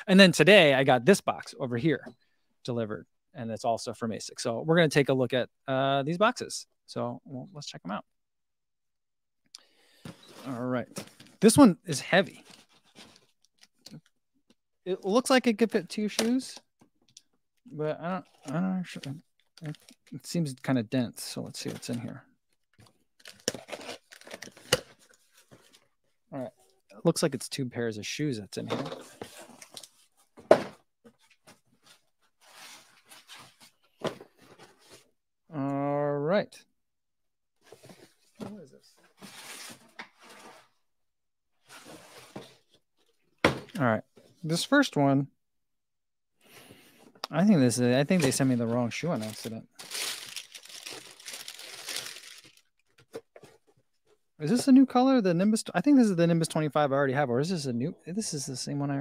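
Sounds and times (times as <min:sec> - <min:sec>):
cardboard rustling: 0:48.1 - 0:53.8
packing tape tearing: 0:49.8 - 0:52.6.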